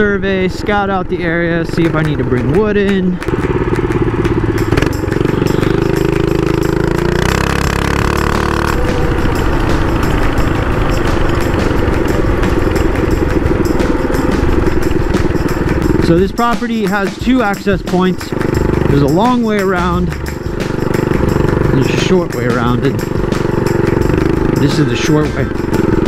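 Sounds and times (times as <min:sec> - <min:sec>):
mini bike engine running: 0:00.0 - 0:26.0.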